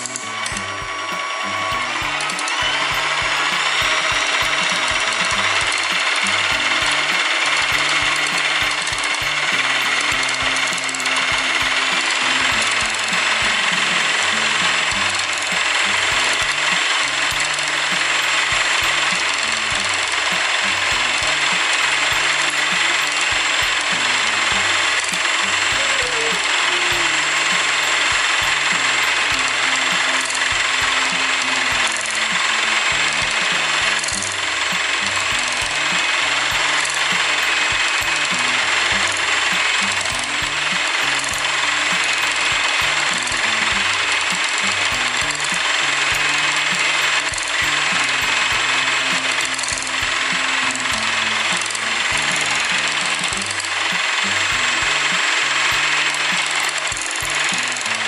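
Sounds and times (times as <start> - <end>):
electric hand mixer running: 0.0 - 58.0.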